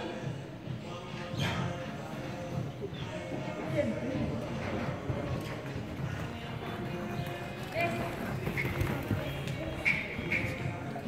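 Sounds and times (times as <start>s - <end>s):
horse hoofbeats on sand: 3.6s - 11.0s.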